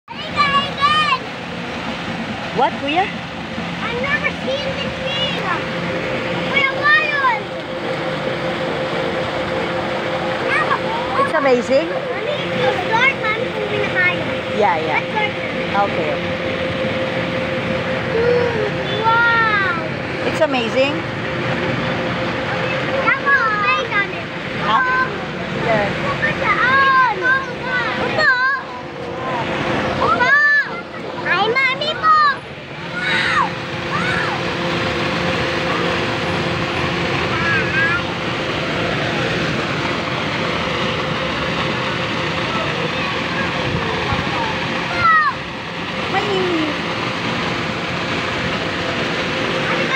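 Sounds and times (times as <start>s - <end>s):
constant low hum: 0.1s - 49.9s
traffic rushing: 0.1s - 49.9s
child squealing: 33.0s - 34.4s.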